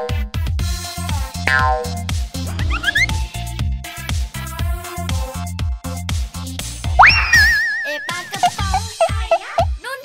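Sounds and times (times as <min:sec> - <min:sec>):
upbeat children's music: 0:00.0 - 0:10.0
upward-sliding cartoon whistle: 0:02.5 - 0:03.2, 0:07.0 - 0:08.5
wobbling held tone: 0:02.5 - 0:03.4.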